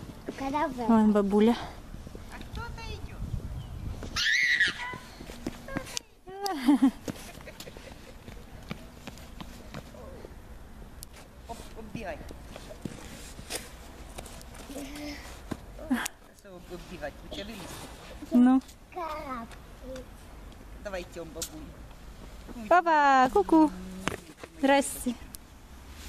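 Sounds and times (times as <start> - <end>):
child's footsteps on brick paving: 4.0 - 10.4, 11.5 - 15.8.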